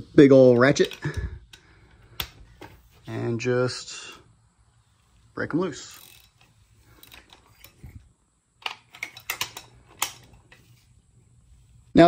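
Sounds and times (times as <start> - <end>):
hand ratchet clicking: 0.5 - 2.4, 5.8 - 8.0, 8.6 - 10.6.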